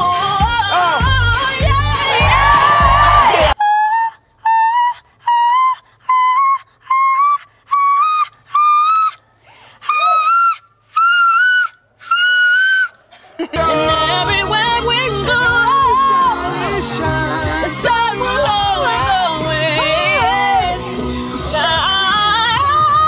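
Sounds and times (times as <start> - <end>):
backing music with singing: 0.0 - 3.6, 13.4 - 23.0.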